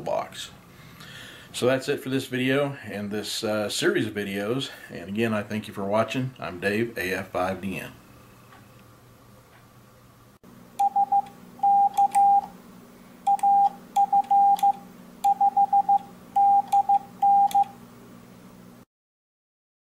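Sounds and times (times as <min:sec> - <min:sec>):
morse code sidetone beeps: 0:10.8 - 0:12.5, 0:13.3 - 0:17.7.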